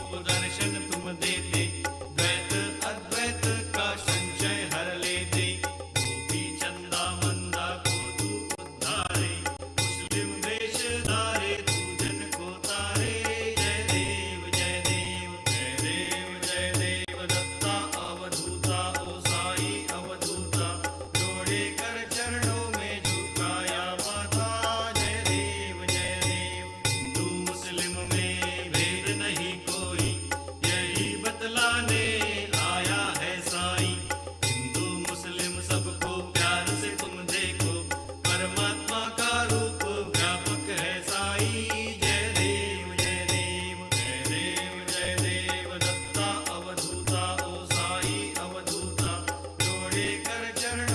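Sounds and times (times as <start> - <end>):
steady percussion beat: 0.0 - 50.9
voices chanting a hymn: 10.1 - 50.9.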